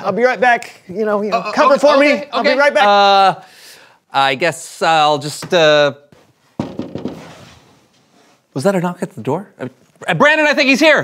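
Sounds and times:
knocking on door: 0:06.6 - 0:07.2.

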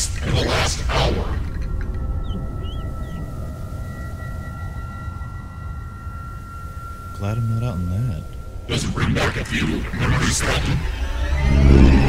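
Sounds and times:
low rumble: 0:00.0 - 0:12.0
high ringing drone tones: 0:01.3 - 0:12.0.

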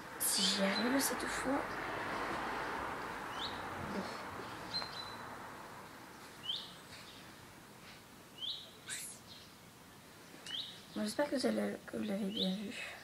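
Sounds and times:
bird chirping faintly: 0:08.3 - 0:13.0.

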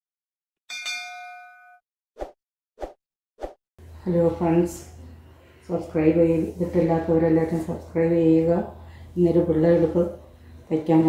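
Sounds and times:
notification bell ding: 0:00.7 - 0:01.8.

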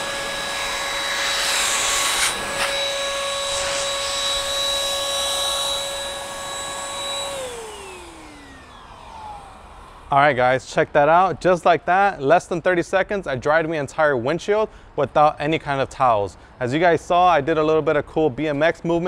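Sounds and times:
electric blower whining: 0:00.0 - 0:10.4.

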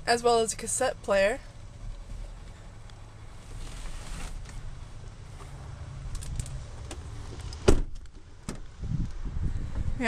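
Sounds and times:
low rumble: 0:01.4 - 0:10.0.

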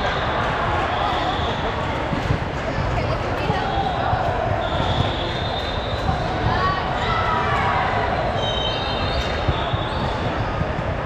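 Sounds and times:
din of many voices: 0:00.0 - 0:11.0.

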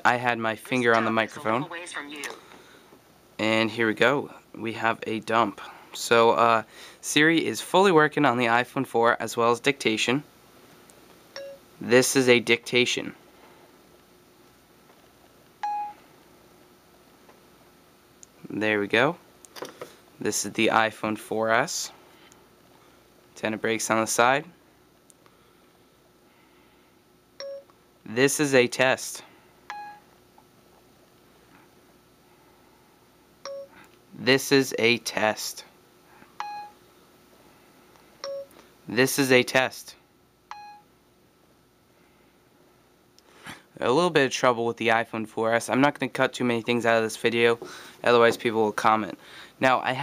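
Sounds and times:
person speaking: 0:00.0 - 0:02.5, 0:43.9 - 0:50.0.

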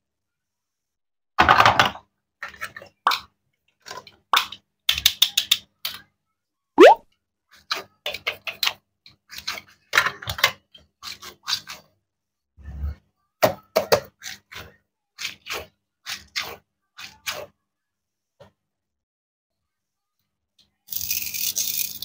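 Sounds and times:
plastic toy pieces clicking: 0:20.9 - 0:22.0.

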